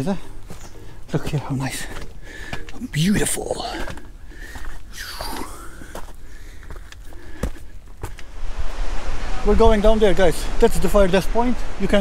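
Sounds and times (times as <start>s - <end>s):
footsteps on rock: 0.4s - 8.3s
wind on microphone: 8.3s - 12.0s.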